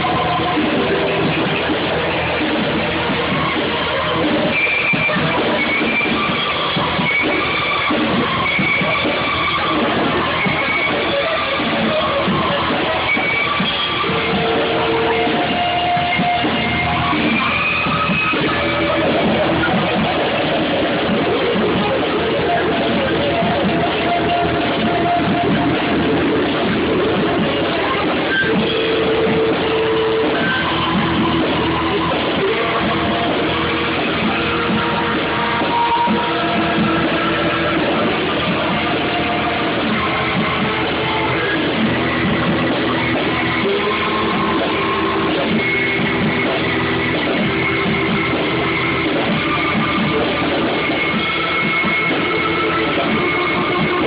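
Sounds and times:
drum kit: 0:00.0 - 0:54.0
electric guitar: 0:00.0 - 0:54.0
keyboards: 0:00.0 - 0:54.0
saxophone: 0:00.0 - 0:54.0.

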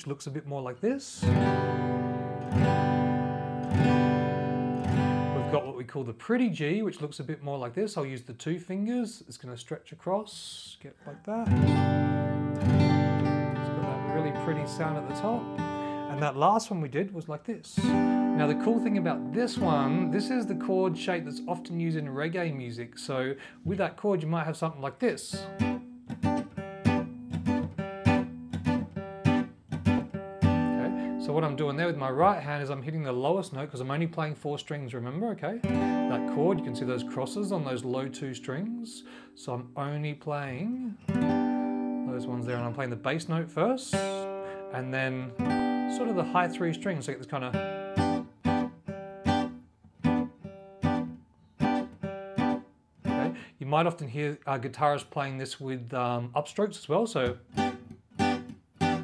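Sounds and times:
acoustic guitar strumming: 0:01.2 - 0:05.6, 0:11.1 - 0:16.5, 0:17.8 - 0:22.6, 0:25.4 - 0:32.4, 0:35.6 - 0:53.5, 0:57.4 - 0:59.0.

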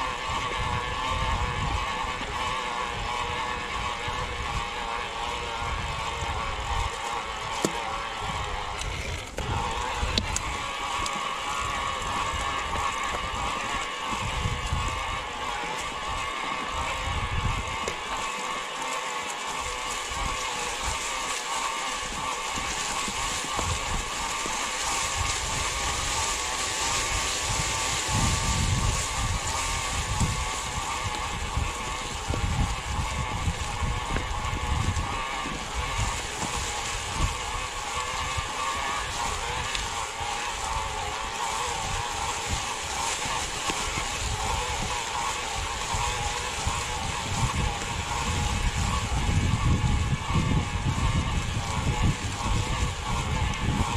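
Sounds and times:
wind on microphone: 0:00.0 - 0:18.7, 0:19.3 - 0:53.9
electric bike motor whine: 0:00.0 - 0:53.9
tyres on dirt and dry leaves: 0:00.0 - 0:53.9.

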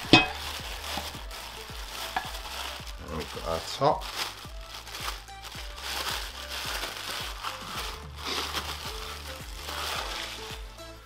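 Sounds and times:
background music with beat: 0:00.0 - 0:11.0
plastic wrapping crinkling: 0:00.0 - 0:11.0.

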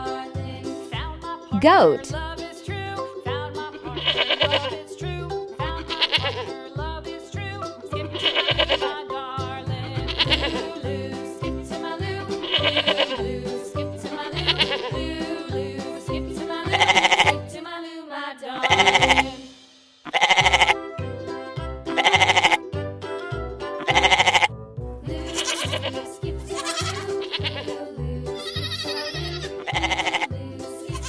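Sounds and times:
children's music with steady beat: 0:00.0 - 0:31.0
goats bleating: 0:03.9 - 0:04.8, 0:05.8 - 0:06.5, 0:08.1 - 0:08.9, 0:10.0 - 0:10.7, 0:12.4 - 0:13.2, 0:14.2 - 0:15.1, 0:16.6 - 0:17.4, 0:18.6 - 0:19.3, 0:20.1 - 0:20.8, 0:22.0 - 0:22.6, 0:23.8 - 0:24.5, 0:25.2 - 0:27.8, 0:28.4 - 0:30.3.

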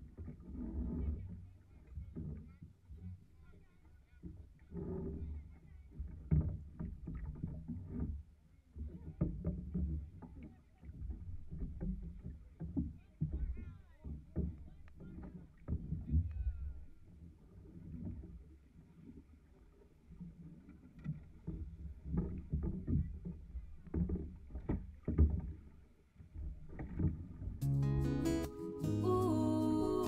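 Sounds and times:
paddles knocking on canoe hull: 0:09.0 - 0:16.9, 0:21.1 - 0:25.7.

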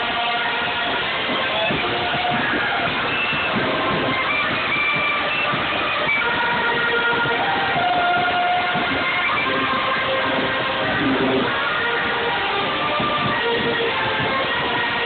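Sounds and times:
marching band playing: 0:00.0 - 0:15.0.

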